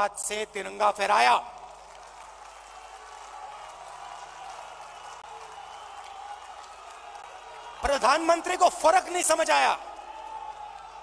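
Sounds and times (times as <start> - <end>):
crowd applauding: 1.2 - 11.0.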